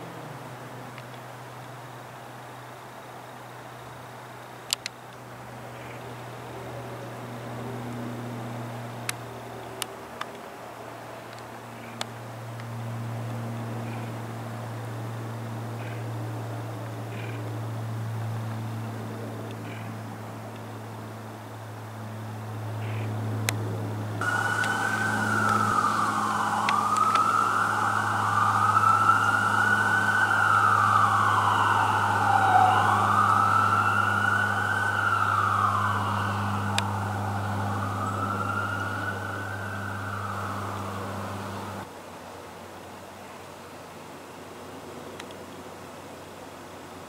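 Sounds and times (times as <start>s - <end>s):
turboprop engines droning: 0.0s - 41.9s
siren wailing: 24.2s - 41.9s.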